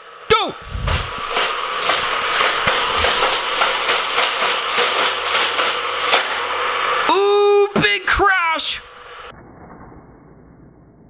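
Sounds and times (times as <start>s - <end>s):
motorized boosters whirring: 0.3s - 9.3s.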